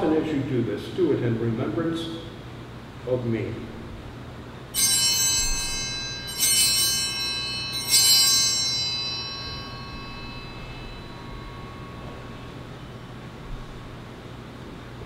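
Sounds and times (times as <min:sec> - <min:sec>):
altar bells ringing: 0:04.7 - 0:14.1.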